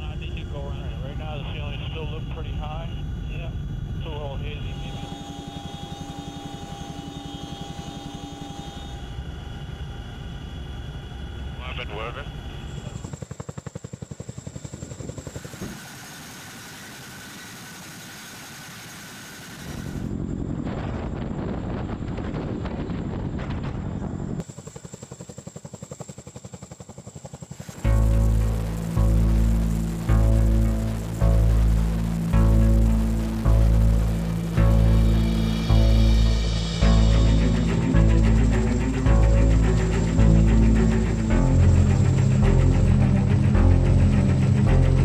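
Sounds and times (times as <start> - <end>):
helicopter engine and rotor noise: 0.0 - 45.0
rotor blades beating: 2.0 - 11.6, 24.4 - 45.0.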